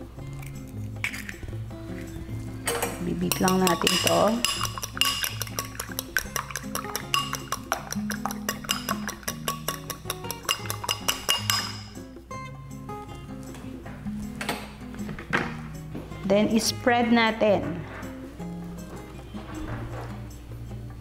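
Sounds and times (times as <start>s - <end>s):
background music: 0.0s - 21.0s
utensil clinking against glass bowl: 2.7s - 12.0s.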